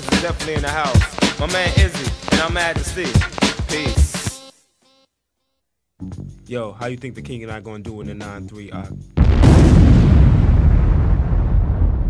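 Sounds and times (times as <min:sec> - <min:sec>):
deep explosion rumble: 0:09.2 - 0:12.0.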